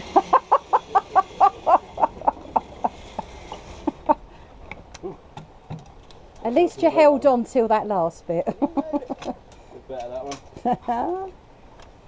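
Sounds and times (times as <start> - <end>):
person laughing hard: 0.0 - 4.2.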